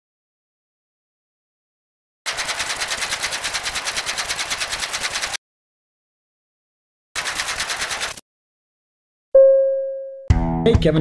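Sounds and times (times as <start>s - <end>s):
rapid clicking: 2.3s - 5.4s, 7.2s - 8.2s.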